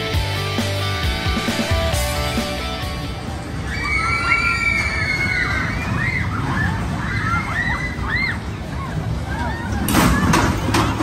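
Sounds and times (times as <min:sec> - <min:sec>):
roller coaster running past: 0:03.1 - 0:11.0
children squealing and shouting: 0:03.6 - 0:10.5.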